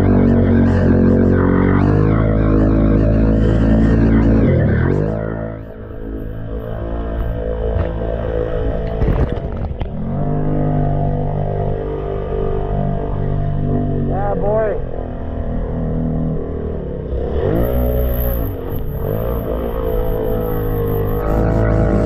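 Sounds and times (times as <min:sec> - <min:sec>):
atv engine running: 0:00.0 - 0:22.0.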